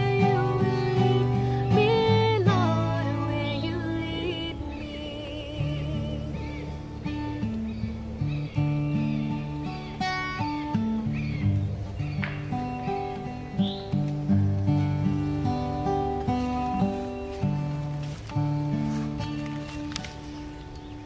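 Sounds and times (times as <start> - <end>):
acoustic guitar strumming: 0.0 - 21.0
birds chirping: 0.0 - 21.0.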